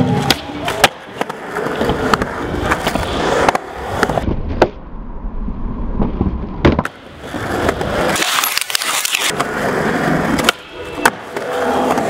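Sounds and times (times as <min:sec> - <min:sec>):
skateboard rolling on ramps: 0:00.0 - 0:12.0
skateboard clacks popping and landing: 0:00.1 - 0:04.8, 0:06.0 - 0:09.6, 0:10.2 - 0:12.0.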